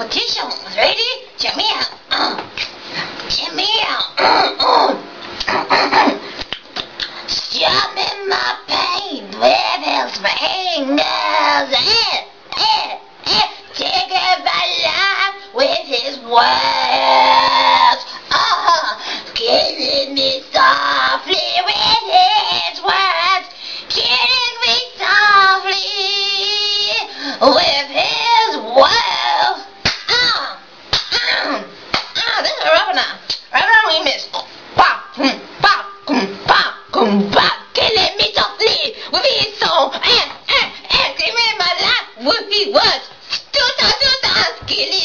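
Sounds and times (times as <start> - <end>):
woman singing wordless notes: 7.4 - 29.8.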